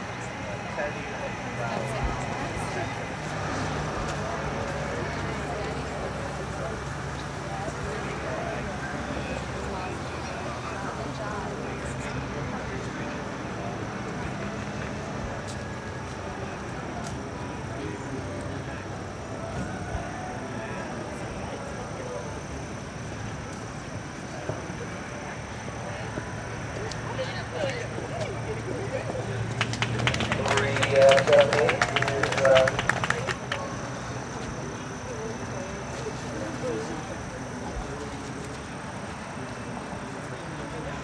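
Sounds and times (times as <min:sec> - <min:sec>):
voices calling out: 0:00.0 - 0:41.0
scattered clapping: 0:29.0 - 0:34.5.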